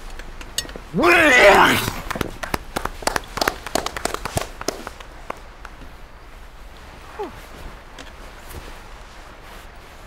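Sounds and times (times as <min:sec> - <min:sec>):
people clapping: 0:01.0 - 0:05.8.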